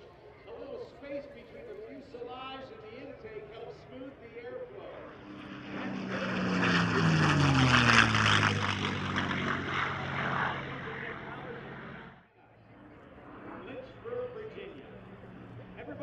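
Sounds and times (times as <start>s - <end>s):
propeller plane engine flyby: 0.0s - 16.0s.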